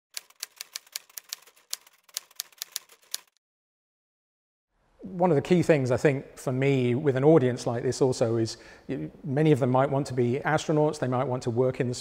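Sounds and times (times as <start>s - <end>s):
keystroke clicks: 0.2s - 3.3s.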